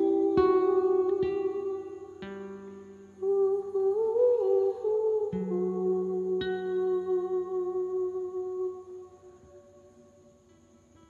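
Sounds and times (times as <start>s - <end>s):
plucked guitar notes: 0.0s - 3.2s, 4.7s - 8.7s
person humming a slow melody: 0.0s - 10.4s.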